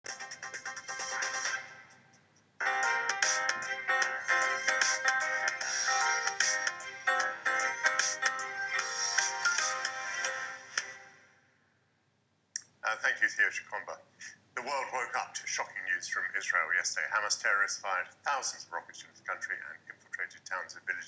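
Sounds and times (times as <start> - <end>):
news theme music with beat: 0.1 - 11.0.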